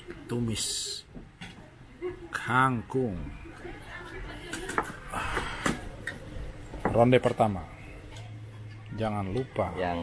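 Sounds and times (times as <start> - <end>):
low background voices: 0.0 - 10.0.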